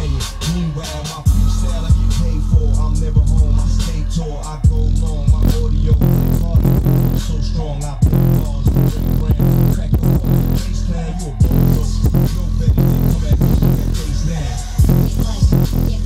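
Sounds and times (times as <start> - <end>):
bass-heavy music through subwoofer: 0.0 - 16.0.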